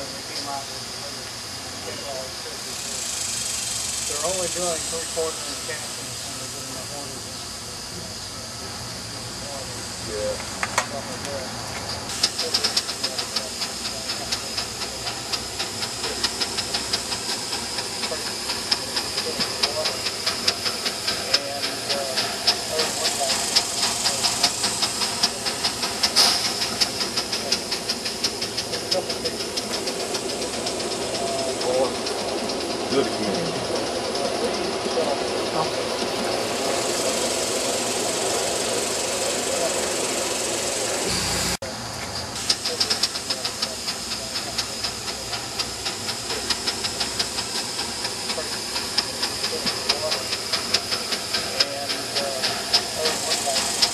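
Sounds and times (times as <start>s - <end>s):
steam hissing: 0.0s - 53.9s
steam locomotive exhaust chuffs: 0.0s - 53.9s
passenger cars rolling: 4.1s - 53.9s.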